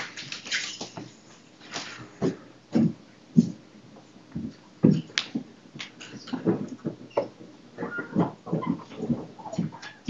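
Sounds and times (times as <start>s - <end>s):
objects knocking and rustling: 0.0s - 10.0s.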